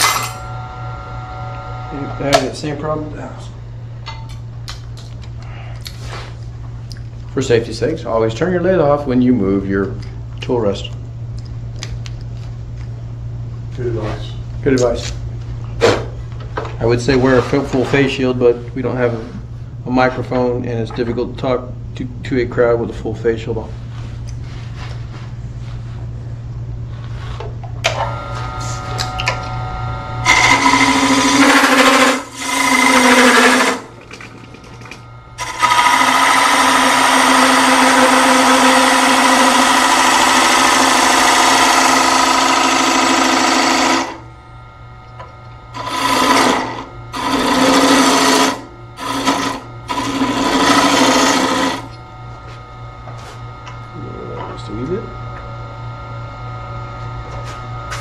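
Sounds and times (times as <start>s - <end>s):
lathe humming: 0.0s - 4.3s, 26.9s - 58.0s
turning tool cutting wood: 28.0s - 44.3s, 45.1s - 52.0s.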